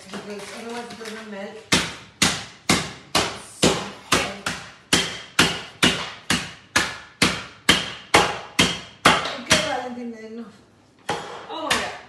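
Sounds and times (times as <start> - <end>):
rolling pin pounding chocolate: 1.7 - 9.8, 11.1 - 12.0.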